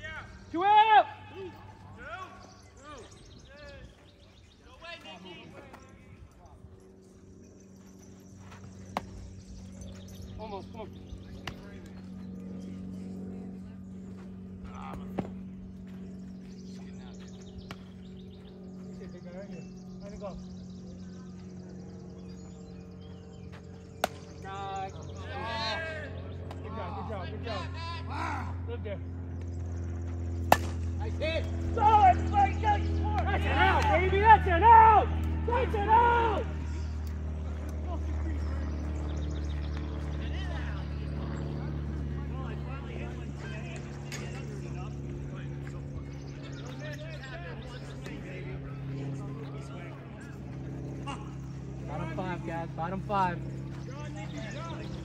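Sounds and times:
men shouting: 0.0s - 2.4s, 31.2s - 36.7s
low steady hum: 0.0s - 55.0s
ball striking glove or bat: 8.9s - 9.2s, 15.1s - 15.4s, 24.0s - 24.3s, 30.4s - 30.9s.

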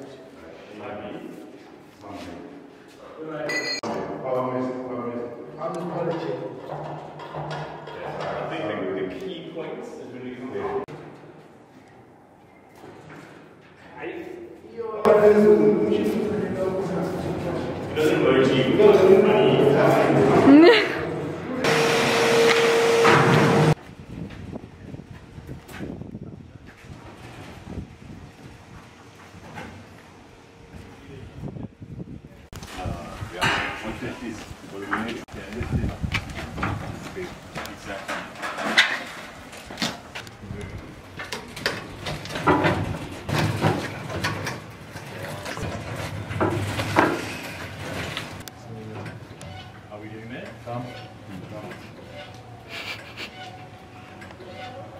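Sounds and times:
loud humming machine noise: 21.2s - 23.8s
trolley knocks and scrapes: 37.8s - 40.1s, 41.2s - 48.4s.

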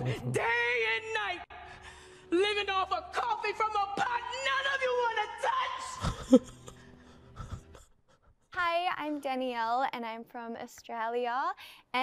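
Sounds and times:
young woman speaking: 8.6s - 12.0s.

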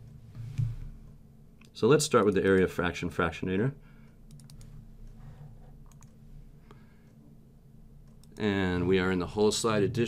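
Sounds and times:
low steady hum: 0.0s - 10.0s
computer mouse clicks: 4.3s - 6.2s, 8.0s - 8.4s.

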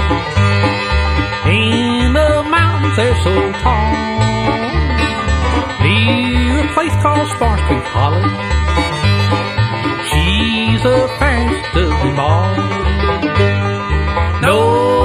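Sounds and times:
bluegrass band playing: 0.0s - 15.0s.

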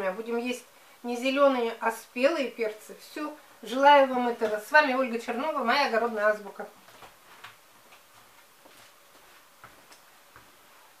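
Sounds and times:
light taps of footsteps: 6.8s - 10.6s.

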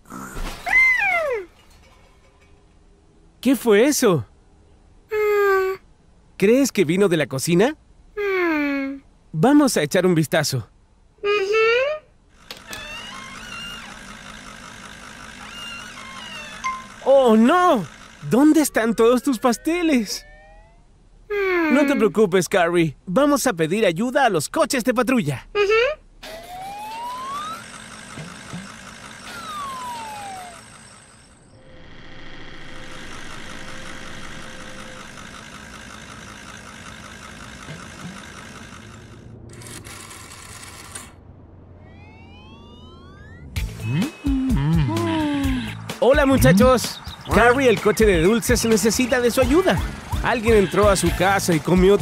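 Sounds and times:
cartoon engine putter: 11.2s - 22.1s, 25.6s - 52.0s
cartoon whistling tone gliding: 26.2s - 27.7s, 29.2s - 31.2s, 41.6s - 45.2s.

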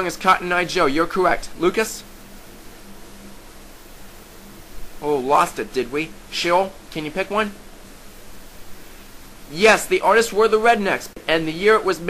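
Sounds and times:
faint low hum: 0.0s - 12.0s
steady hiss: 0.0s - 12.0s.

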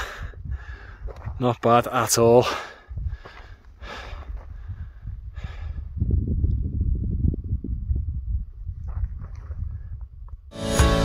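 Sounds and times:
wind buffeting microphone: 0.0s - 1.6s, 2.7s - 10.5s
background music: 10.5s - 11.0s.

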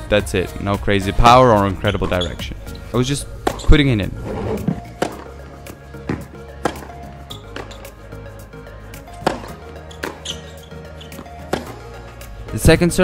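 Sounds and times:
background music: 0.0s - 13.0s
tennis balls struck and bouncing: 3.4s - 3.9s, 4.6s - 12.4s.

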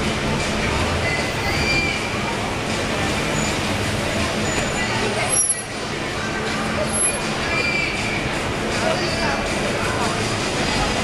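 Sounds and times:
people talking: 0.0s - 11.0s
traffic noise: 0.0s - 11.0s.

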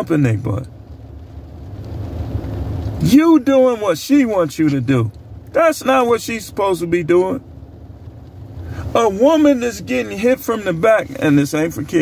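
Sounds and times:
vehicle rumble inside car: 0.0s - 12.0s.

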